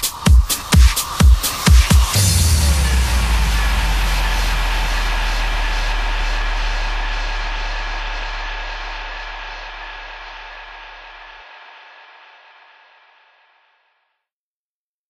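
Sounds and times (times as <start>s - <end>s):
electronic noise wash: 0.0s - 13.4s
deep sub-bass: 2.1s - 11.4s.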